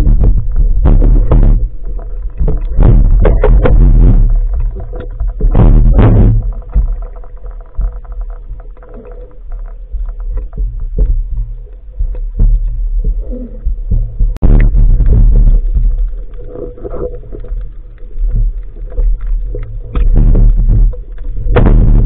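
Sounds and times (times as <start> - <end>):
clicks and crackles: 0.0 - 22.0
muffled underwater water rumble: 0.0 - 22.0.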